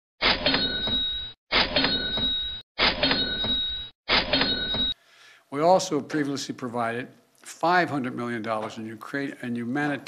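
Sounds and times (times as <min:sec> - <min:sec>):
cash register ka-ching: 0:00.3 - 0:05.0.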